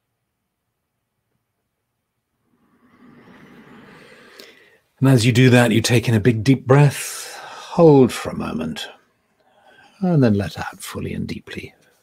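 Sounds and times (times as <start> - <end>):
man breathing in through mouth: 2.5 - 5.0
man speaking: 5.0 - 9.0, 10.0 - 11.8.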